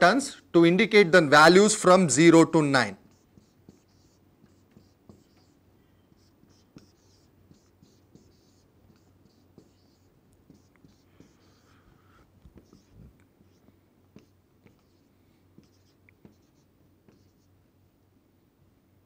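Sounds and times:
marker scratching on whiteboard: 1.6 - 17.6
marker tip tapping board: 3.1 - 5.6, 15.6 - 17.3.

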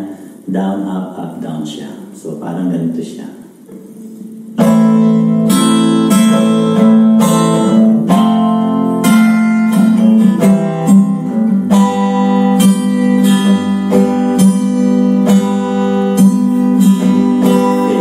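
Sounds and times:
acoustic guitar strumming: 3.6 - 18.0.

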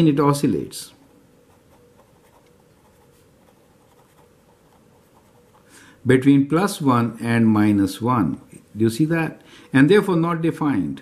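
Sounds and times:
marker scratching on paper: 1.5 - 5.7.

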